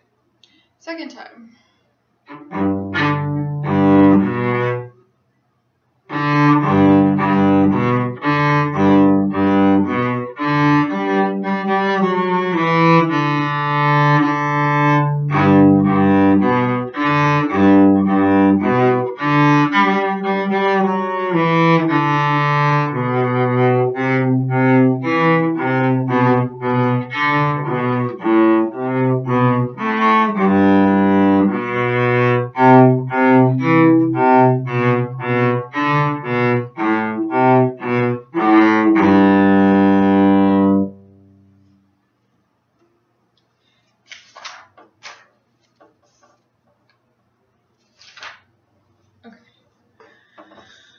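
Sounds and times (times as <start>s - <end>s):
bowed cello melody: 2.3s - 5.0s, 6.1s - 41.6s.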